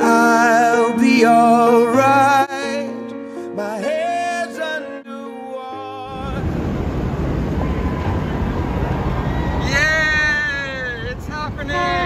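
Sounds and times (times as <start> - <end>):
boat motors rumbling: 6.1 - 12.0
wind on microphone: 6.1 - 12.0.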